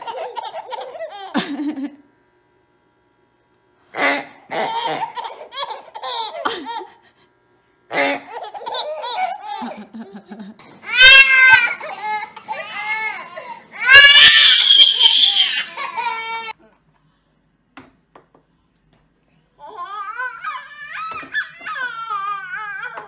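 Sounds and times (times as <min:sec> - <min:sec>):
babies laughing and babbling: 0:00.0 - 0:01.4, 0:04.5 - 0:07.0, 0:08.3 - 0:16.6, 0:19.6 - 0:23.0.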